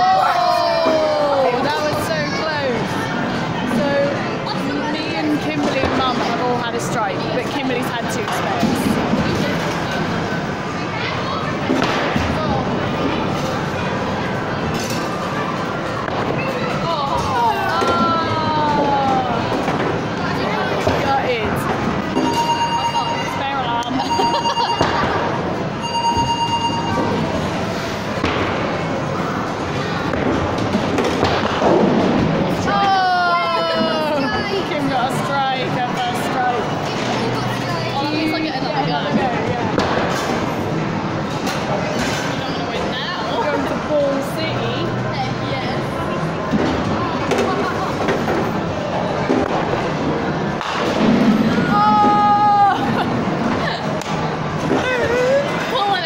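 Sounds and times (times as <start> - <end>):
long electronic beeps: 25.8 - 27.1.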